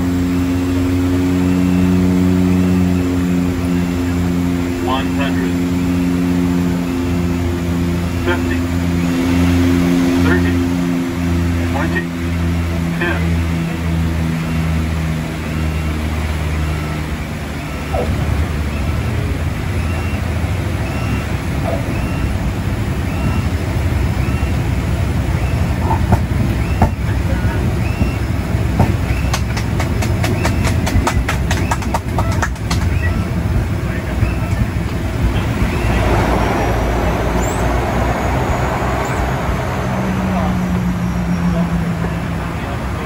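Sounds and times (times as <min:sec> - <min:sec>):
turboprop engines droning: 0:00.0 - 0:43.0
wheels rumbling on runway: 0:00.0 - 0:43.0.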